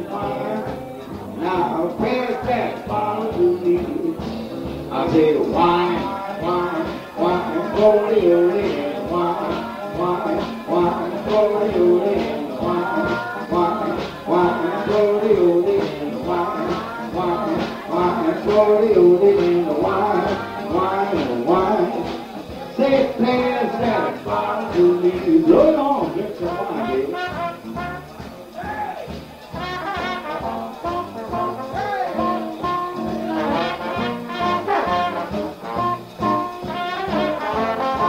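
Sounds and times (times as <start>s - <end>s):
jazz band playing: 0.0s - 38.0s.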